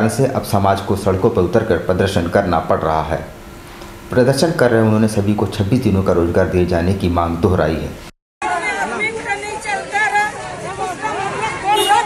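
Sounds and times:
crowd of protesters calling out: 8.4s - 12.0s.

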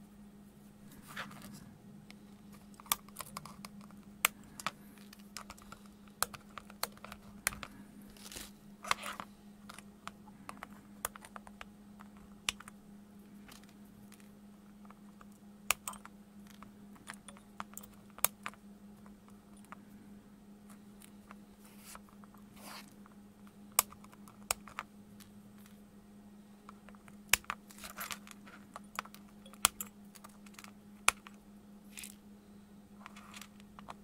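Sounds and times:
steady low hum: 0.0s - 34.0s
tools clicking on plastic mat: 2.7s - 12.8s, 26.7s - 32.2s.

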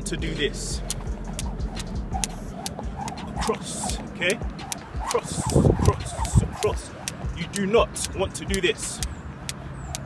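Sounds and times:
skipping rope slapping asphalt: 0.6s - 10.0s.

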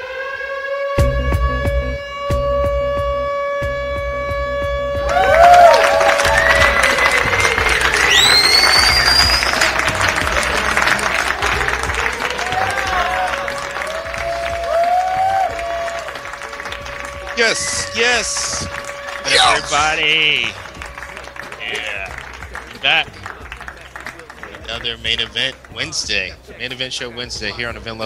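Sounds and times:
show intro music: 1.0s - 28.0s
cheering crowd effect with whistles: 5.0s - 23.0s.

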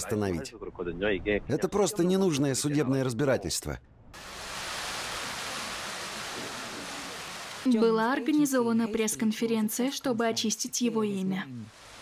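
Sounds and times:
steady background hiss: 4.2s - 7.8s.

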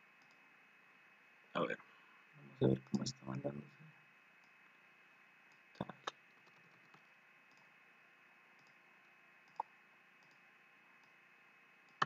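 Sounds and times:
computer mouse clicks: 0.2s - 0.4s, 5.5s - 7.8s, 8.5s - 11.2s.

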